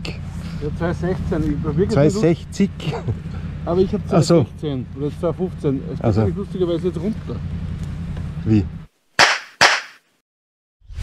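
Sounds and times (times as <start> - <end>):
sharp snapping hits: 9.2 - 10.0
short swish: 9.2 - 10.0.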